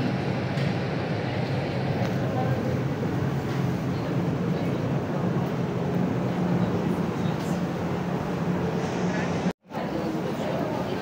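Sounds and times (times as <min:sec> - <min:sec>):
murmur of voices: 0:09.0 - 0:11.0.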